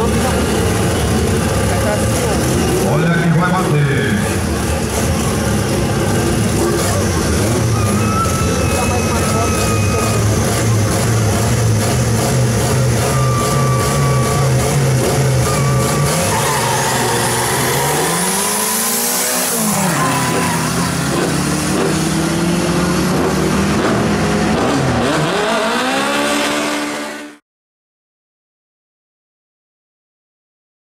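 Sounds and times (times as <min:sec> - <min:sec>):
car engines revving: 0:00.0 - 0:27.4
car passing at full throttle: 0:04.2 - 0:27.4.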